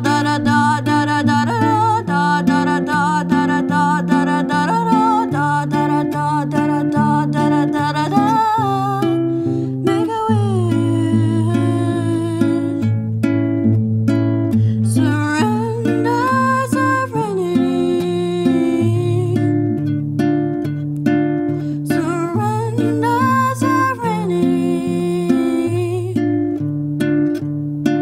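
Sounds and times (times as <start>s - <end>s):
acoustic guitar picking: 0.0s - 28.0s.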